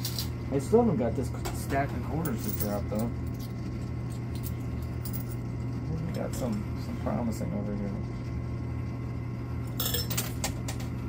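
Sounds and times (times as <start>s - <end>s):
arcade machine humming: 0.0s - 11.0s.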